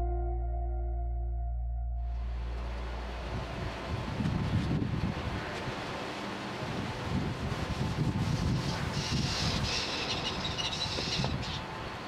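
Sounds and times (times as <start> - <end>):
wind on microphone: 3.1 - 6.0, 6.6 - 11.7.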